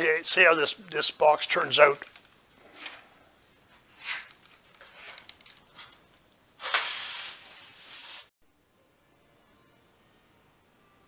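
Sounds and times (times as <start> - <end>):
sandpaper rubbing on metal: 6.7 - 8.3.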